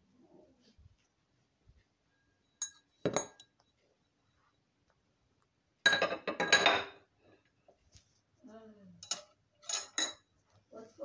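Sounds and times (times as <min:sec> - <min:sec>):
dishes clattering: 0:02.6 - 0:03.6, 0:05.8 - 0:07.1, 0:09.0 - 0:10.3
glassware clinking: 0:02.6 - 0:03.6, 0:05.9 - 0:07.1, 0:09.0 - 0:10.3.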